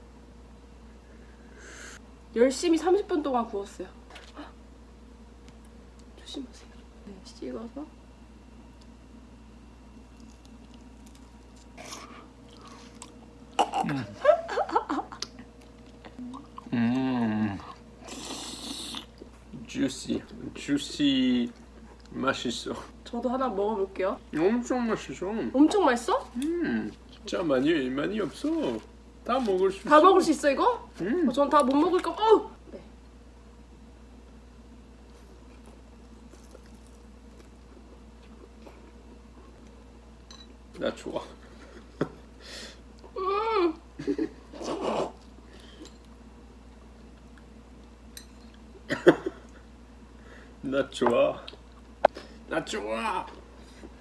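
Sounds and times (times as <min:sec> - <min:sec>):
steady low hum: 0:00.0 - 0:54.0
chewing: 0:10.1 - 0:13.6, 0:15.2 - 0:19.3, 0:35.4 - 0:39.0.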